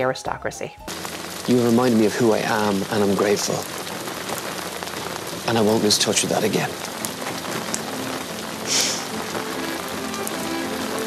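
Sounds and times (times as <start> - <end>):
soft music: 0.0 - 3.7, 5.5 - 11.0
steady rain falling: 0.9 - 11.0.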